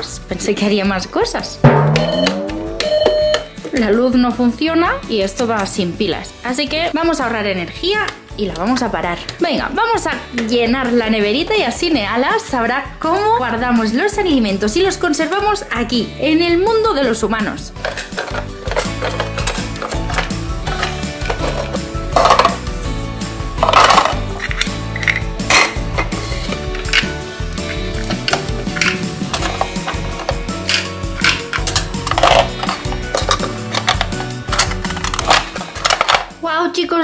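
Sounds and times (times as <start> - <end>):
background music: 0.0 - 37.0
louder knocks: 1.7 - 3.2
plastic toy pieces clattering: 17.8 - 22.6, 23.6 - 27.2, 28.0 - 36.3.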